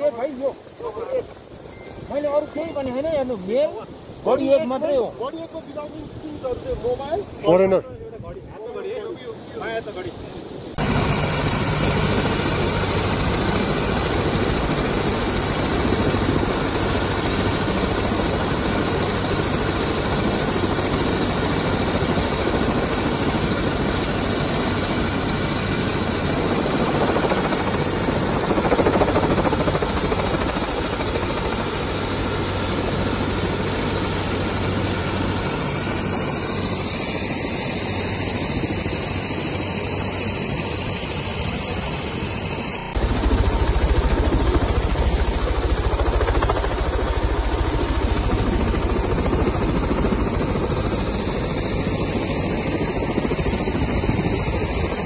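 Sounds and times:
helicopter turbine and rotor: 0.0 - 55.0.

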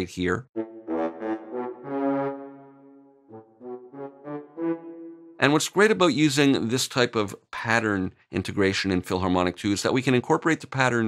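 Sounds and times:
staccato french horns: 0.6 - 5.6.

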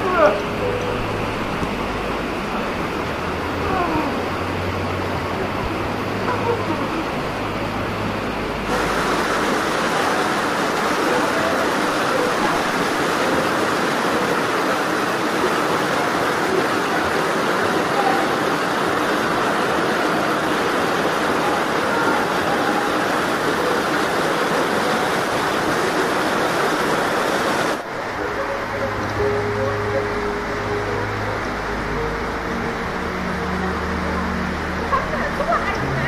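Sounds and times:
river water rushing over stones: 0.0 - 36.0.

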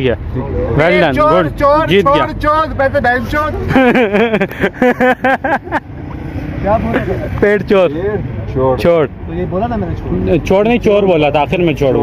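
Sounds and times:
men talking excitedly: 0.0 - 4.9, 6.1 - 12.0.

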